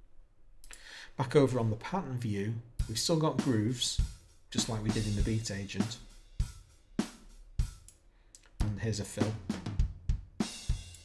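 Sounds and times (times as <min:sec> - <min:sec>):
acoustic drum hits: 0:08.6 - 0:10.9.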